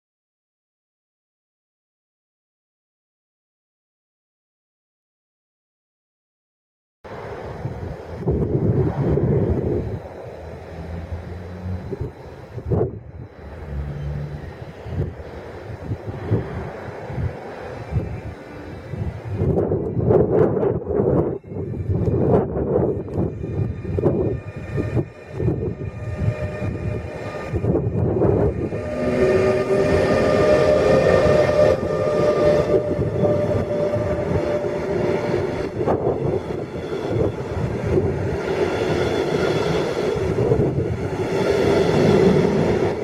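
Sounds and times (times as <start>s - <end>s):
electric locomotive hum: 7.1s - 43.0s
train rolling noise: 7.1s - 43.0s
train wheels rumbling: 7.1s - 43.0s.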